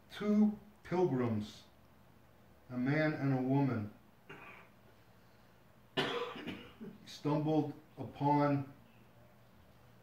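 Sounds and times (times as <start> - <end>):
man coughing: 4.3 - 4.8, 6.0 - 7.0.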